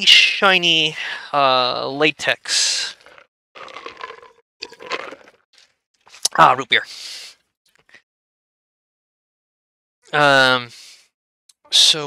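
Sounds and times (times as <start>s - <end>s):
person drinking: 2.8s - 5.4s.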